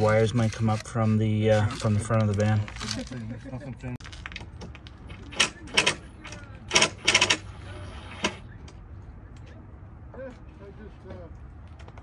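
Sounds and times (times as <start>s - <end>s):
hand tool scraping plywood edge: 0.0s - 2.2s.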